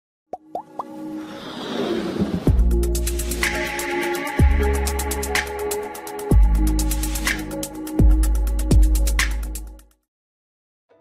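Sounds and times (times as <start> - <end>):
electronic music: 2.5 - 9.8.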